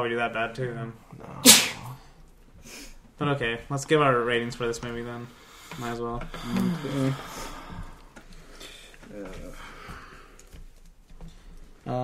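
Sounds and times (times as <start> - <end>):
faint breath hiss: 1.0 - 3.1
explosive burst of breath: 1.4 - 2.0.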